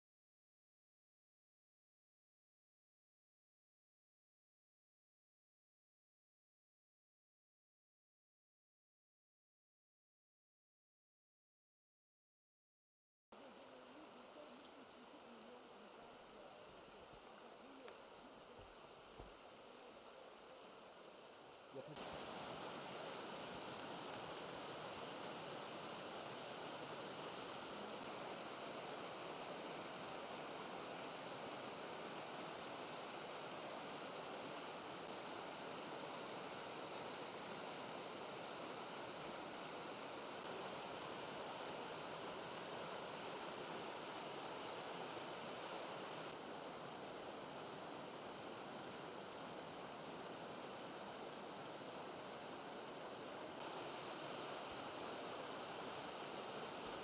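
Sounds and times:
stream running over rocks: 13.4 - 57.0.

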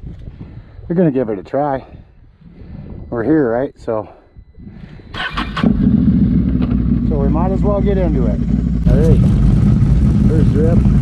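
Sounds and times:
engine starting and idling: 5.1 - 11.0.

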